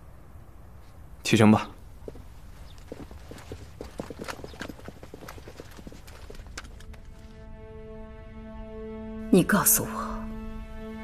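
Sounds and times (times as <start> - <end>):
footsteps on stone paving: 1.9 - 7.4.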